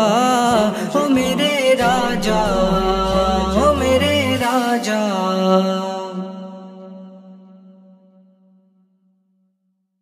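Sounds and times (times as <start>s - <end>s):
held vocal drone: 1.8s - 5.2s.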